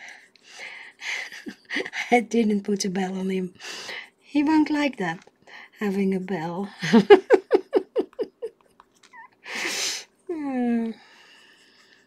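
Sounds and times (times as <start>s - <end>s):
woman laughing: 1.0s - 2.1s, 6.7s - 9.3s.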